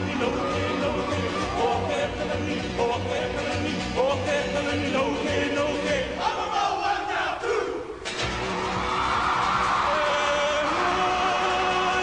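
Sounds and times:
men chanting together: 0:00.0 - 0:07.9
crowd noise: 0:00.0 - 0:12.0.

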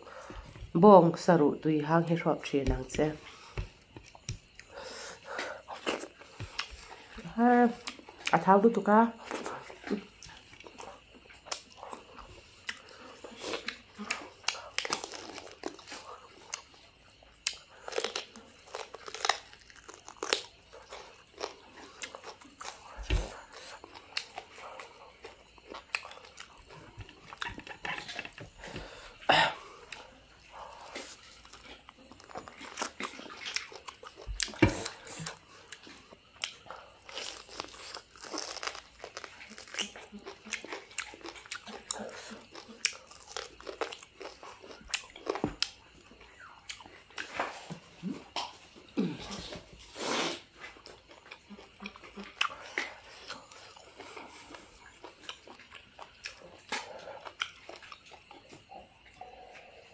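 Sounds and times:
chewing with crunches: 0:02.8 - 0:59.9.

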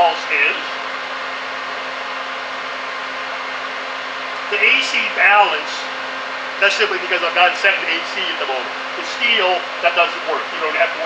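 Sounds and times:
cooling fan whirring: 0:00.0 - 0:11.0
low even hum: 0:00.0 - 0:11.0.

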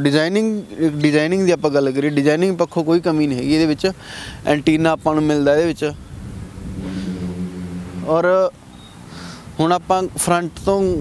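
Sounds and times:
vehicle engine humming: 0:05.2 - 0:10.5.

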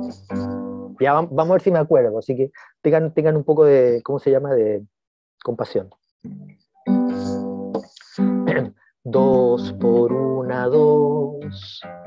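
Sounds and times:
acoustic guitar strums: 0:00.0 - 0:00.9, 0:06.3 - 0:10.4.

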